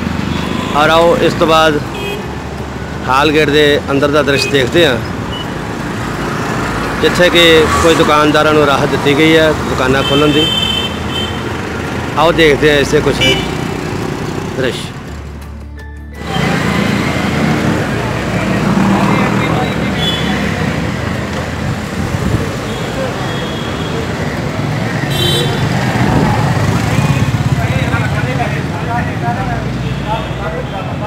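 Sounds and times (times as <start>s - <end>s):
cars and motorcycles passing: 0.0s - 31.0s.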